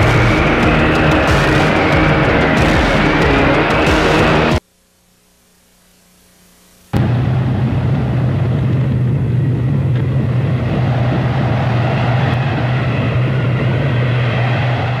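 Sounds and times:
loud rumbling roar: 0:00.0 - 0:04.6, 0:07.0 - 0:15.0
low hum: 0:00.0 - 0:15.0.

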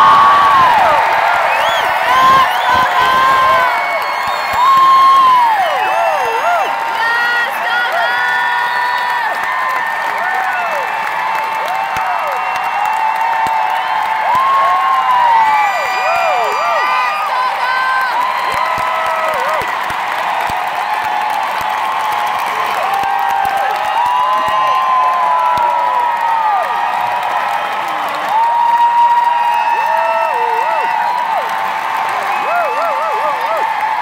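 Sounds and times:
crowd cheering and applauding: 0:00.0 - 0:34.0
high-pitched screams and whoops: 0:00.0 - 0:34.0.

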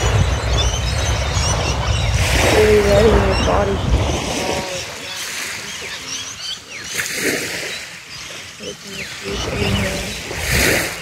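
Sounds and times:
birds chirping: 0:00.0 - 0:11.0
gentle surf: 0:00.0 - 0:11.0
wind: 0:00.0 - 0:11.0.

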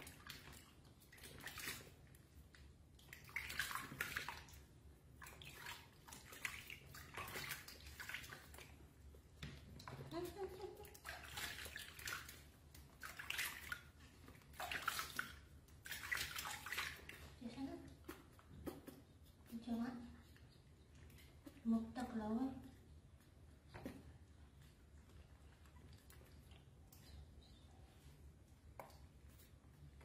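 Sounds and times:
water splashing in a basin: 0:00.0 - 0:19.8.

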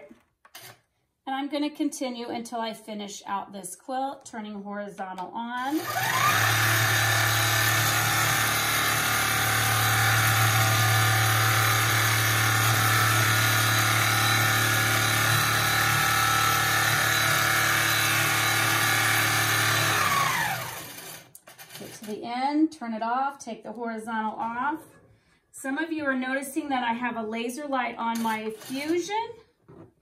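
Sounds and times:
quilting machine stitching: 0:05.6 - 0:22.2.

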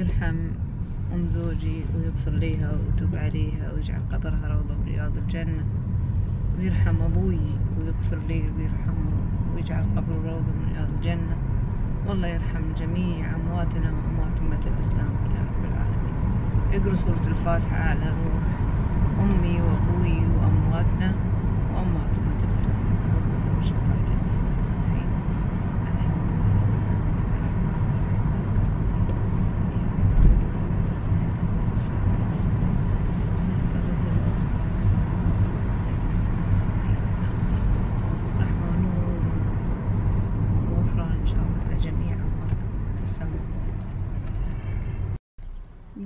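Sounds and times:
car road and engine rumble: 0:00.0 - 0:46.0.

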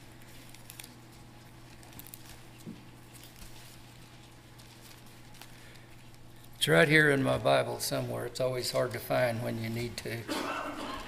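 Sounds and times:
pages being leafed through: 0:00.0 - 0:10.2
steady low hum: 0:00.0 - 0:11.0.

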